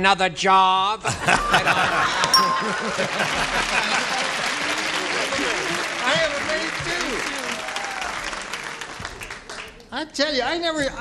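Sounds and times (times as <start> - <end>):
audience laughing: 1.1 - 7.6
audience applauding: 2.2 - 9.9.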